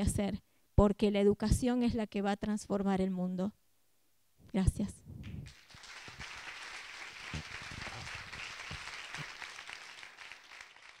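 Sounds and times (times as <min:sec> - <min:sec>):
audience applauding: 0:05.4 - 0:11.0.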